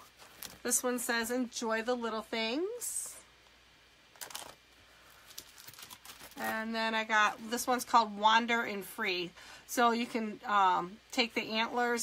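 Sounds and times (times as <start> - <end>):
paper and plastic sheets rustling: 0.0 - 0.8, 4.1 - 6.7.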